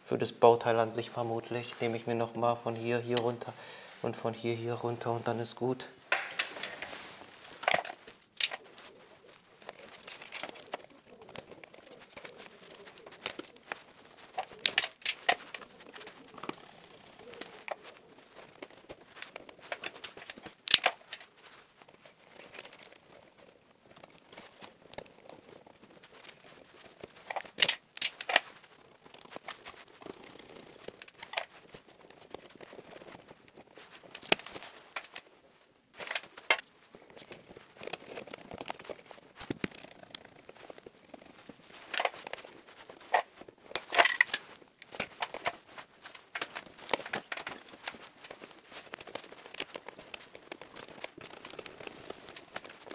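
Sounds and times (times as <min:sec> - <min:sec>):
wire insulation rustling: 0:00.7 - 0:52.9.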